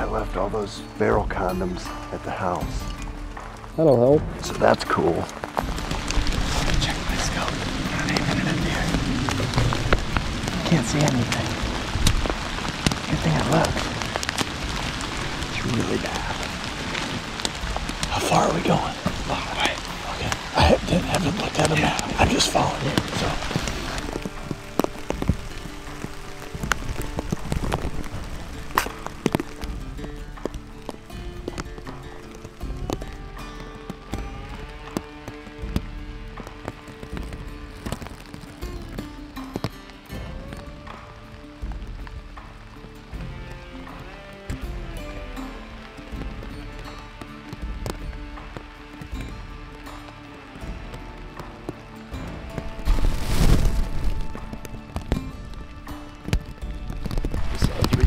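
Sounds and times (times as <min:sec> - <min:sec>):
background music with held notes: 0:00.0 - 0:58.0.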